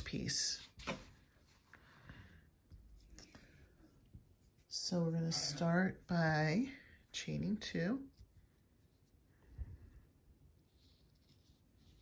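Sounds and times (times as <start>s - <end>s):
yarn rustling on crochet hook: 2.8s - 9.3s, 10.0s - 12.0s.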